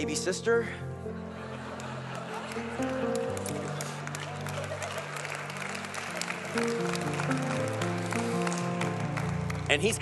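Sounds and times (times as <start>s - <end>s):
soft keyboard chords: 0.0s - 10.0s.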